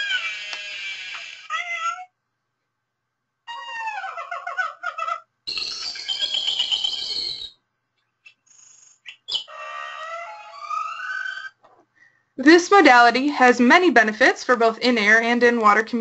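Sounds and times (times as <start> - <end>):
recorded animal calls: 0.0 - 2.1, 3.5 - 7.6, 8.2 - 11.7.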